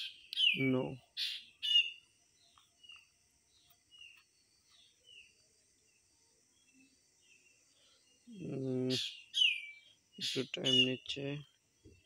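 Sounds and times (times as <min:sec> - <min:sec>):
small bird chirping: 0:00.0 - 0:12.0.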